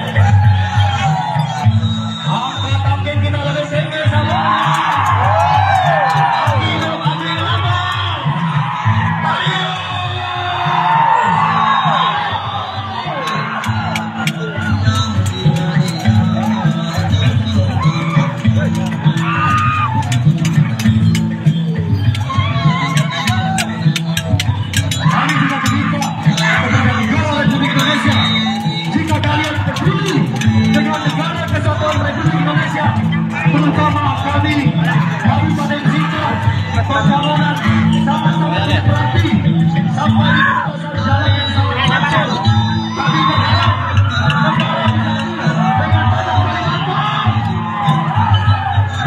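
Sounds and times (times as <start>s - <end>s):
music with percussive strikes: 0.0s - 10.0s, 10.7s - 49.0s
crowd of men shouting: 0.0s - 49.0s
rhythmic drumbeat: 0.0s - 49.0s.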